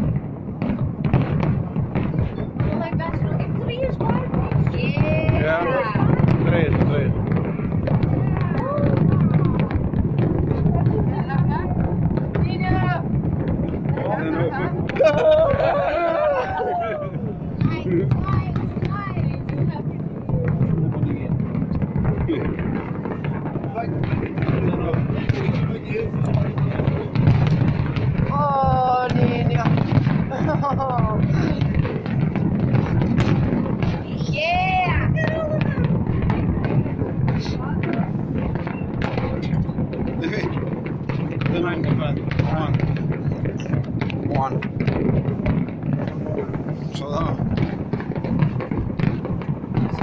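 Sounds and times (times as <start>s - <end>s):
fireworks booms: 0.0s - 50.0s
fireworks crackling and popping: 0.0s - 50.0s.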